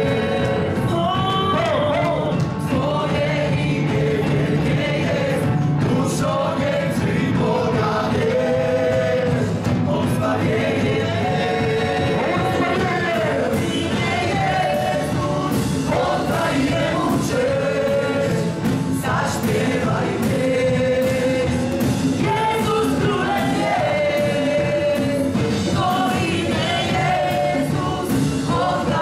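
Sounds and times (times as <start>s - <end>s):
drum kit steady beat: 0.0s - 29.0s
keyboard: 0.0s - 29.0s.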